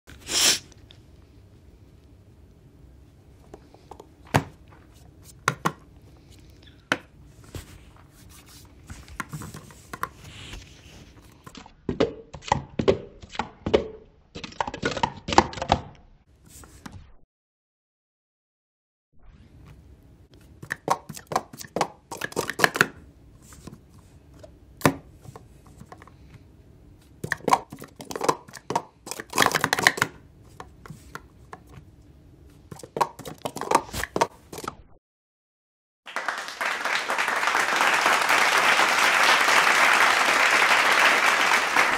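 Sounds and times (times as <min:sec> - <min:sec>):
plastic cups clacking: 0:20.7 - 0:22.9, 0:27.2 - 0:30.7, 0:32.7 - 0:34.3
plastic cups clattering: 0:27.2 - 0:30.1.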